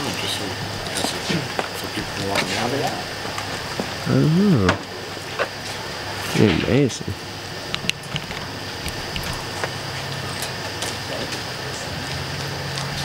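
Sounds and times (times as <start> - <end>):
steady hiss: 0.0 - 13.0
insects clicking on hot lamp: 7.7 - 13.0.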